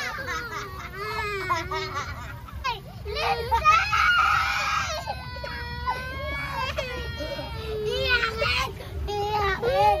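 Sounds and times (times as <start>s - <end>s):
girl crying: 3.2s - 10.0s.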